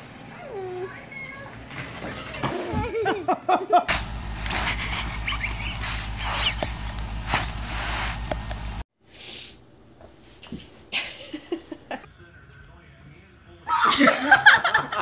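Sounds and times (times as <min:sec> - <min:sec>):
low hum: 0:03.9 - 0:08.8.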